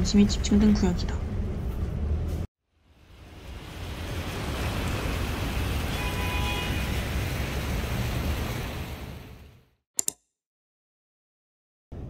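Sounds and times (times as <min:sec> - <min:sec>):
fountain water splashing: 0:02.8 - 0:09.6.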